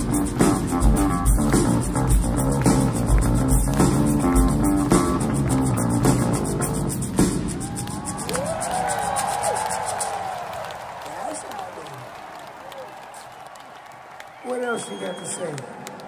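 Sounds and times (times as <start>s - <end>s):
live rock band playing: 0.0s - 8.3s
crowd cheering and whooping: 7.4s - 16.0s.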